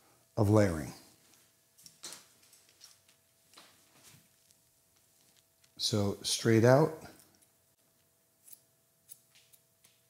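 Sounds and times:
scissors snipping hair: 8.4 - 10.0.

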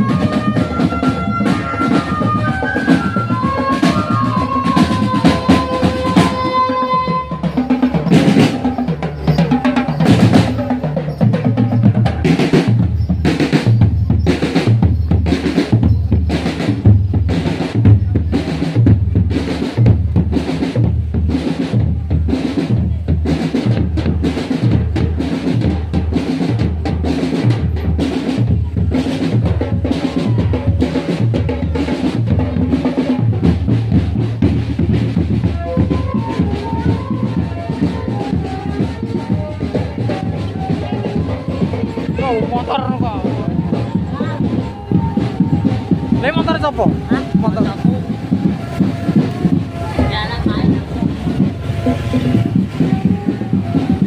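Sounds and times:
held wind instrument note: 0.0 - 10.7
marching bass and snare drums: 0.0 - 54.0.

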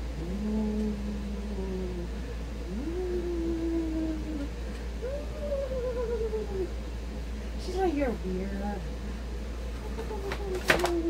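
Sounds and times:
woman moaning ghostly: 0.1 - 6.8.

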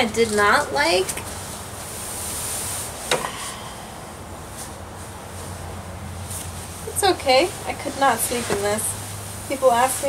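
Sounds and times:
hammock fabric rustling: 0.0 - 10.0.

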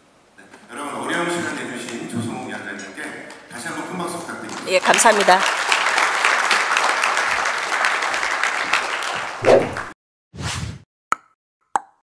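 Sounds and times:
audience applauding: 1.0 - 10.0.

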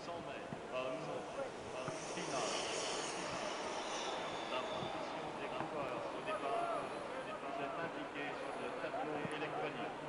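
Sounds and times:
steady background noise: 0.0 - 10.0
indistinct voices: 0.9 - 9.4
hiss: 1.5 - 6.5.

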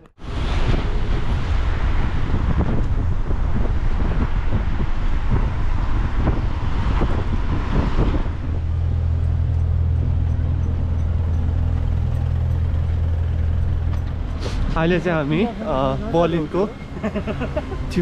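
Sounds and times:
road traffic: 0.0 - 18.0
wind buffeting microphone: 0.2 - 18.0
steady low hum: 1.1 - 17.8.

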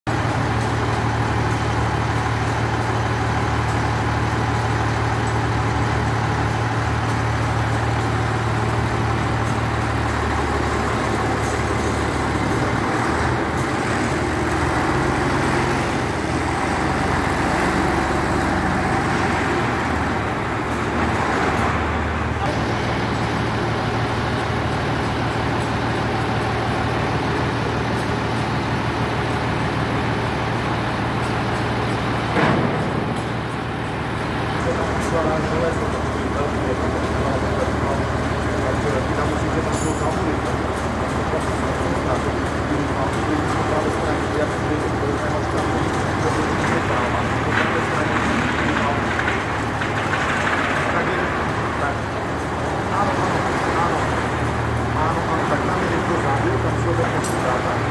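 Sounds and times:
diesel truck engine running: 0.1 - 57.9.

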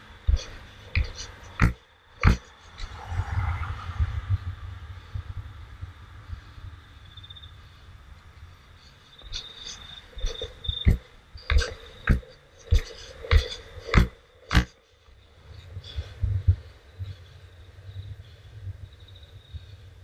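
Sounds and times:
sharp knocks: 1.0 - 2.5.

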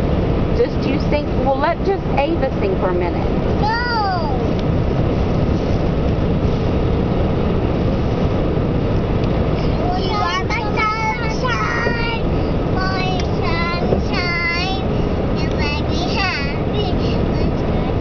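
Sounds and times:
car road and engine noise: 0.0 - 18.0
girl's high sliding voice: 3.6 - 4.5.

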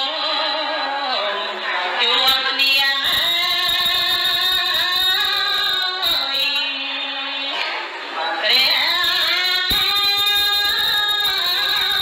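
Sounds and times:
woman chanting: 0.0 - 12.0.

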